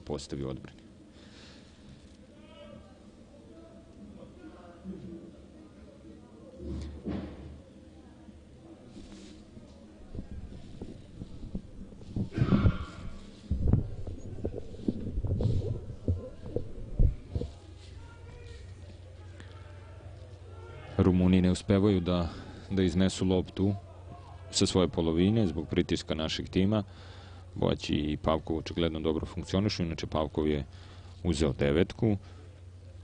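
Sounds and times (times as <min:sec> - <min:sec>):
low stadium background: 0:00.0 - 0:33.0
low rumbling: 0:10.0 - 0:19.2
faint shouts from players: 0:17.8 - 0:21.0.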